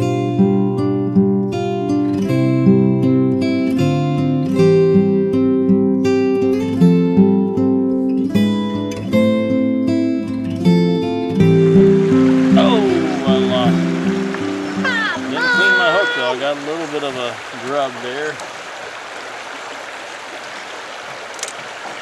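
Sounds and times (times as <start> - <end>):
acoustic guitar music: 0.0 - 18.1.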